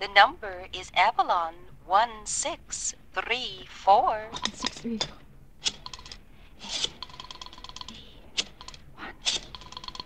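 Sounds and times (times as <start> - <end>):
rotary dial clicking: 6.8 - 10.0.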